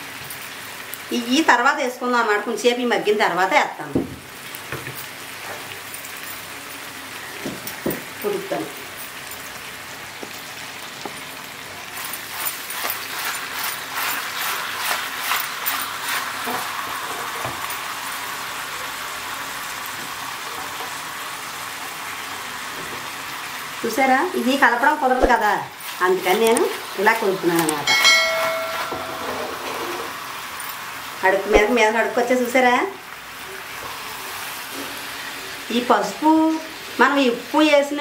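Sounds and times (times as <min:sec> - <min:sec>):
food sizzling in a pot: 0:00.0 - 0:38.0.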